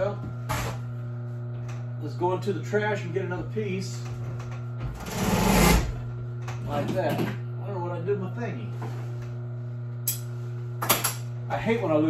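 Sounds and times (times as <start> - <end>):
sewing machine motor humming: 4.9 - 6.1.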